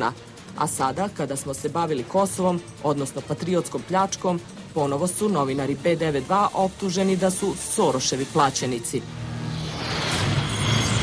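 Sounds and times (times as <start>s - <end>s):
low drone: 4.4s - 11.0s.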